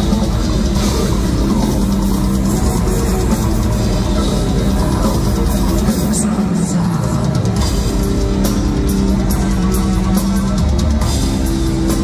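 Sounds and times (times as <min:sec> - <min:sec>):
distorted guitars: 0:00.0 - 0:12.0
drum kit: 0:00.0 - 0:12.0.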